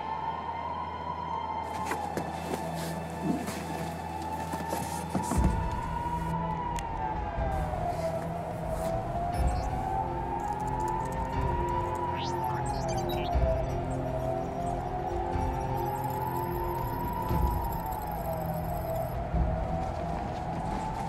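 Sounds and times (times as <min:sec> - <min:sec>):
low pulsing beat: 0:05.2 - 0:21.0
siren-like tone rising and falling: 0:05.4 - 0:19.2.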